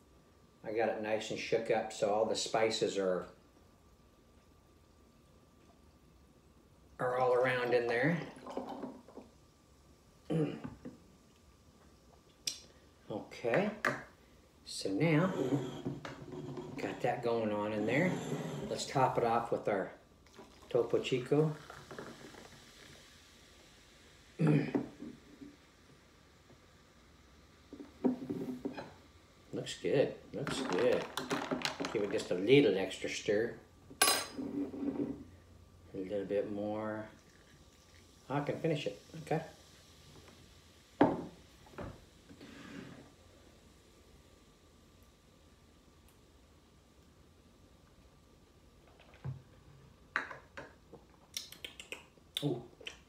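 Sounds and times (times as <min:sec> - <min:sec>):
liquid trickling onto ice: 0:37.0 - 0:38.4
sparkling water pouring into glass: 0:37.0 - 0:41.6.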